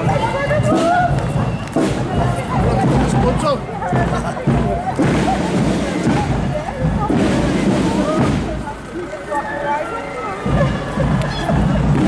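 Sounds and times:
people talking: 0:00.0 - 0:12.0
street noise: 0:00.0 - 0:12.0.

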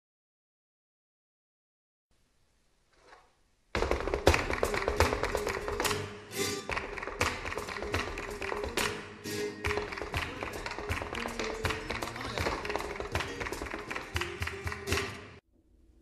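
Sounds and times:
flamenco music: 0:03.8 - 0:15.4
rapid percussive footwork strikes: 0:03.8 - 0:15.4.

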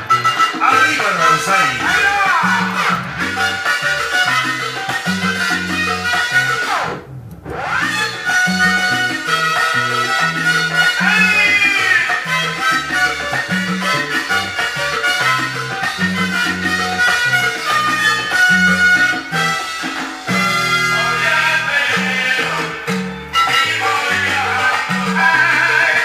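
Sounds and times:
stepping bass line: 0:00.0 - 0:19.4
salsa band playing: 0:00.0 - 0:26.0.

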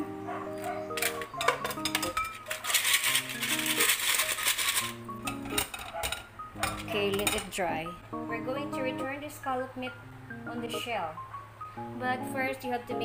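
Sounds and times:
light background music: 0:00.0 - 0:13.0
shells clattering in metal strainer: 0:01.0 - 0:07.5.

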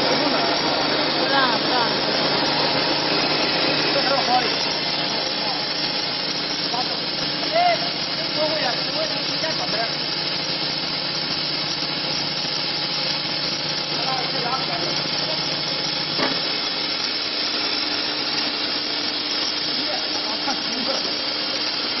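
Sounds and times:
snack extruder machine running: 0:00.0 - 0:22.0
knock: 0:16.2 - 0:16.4.

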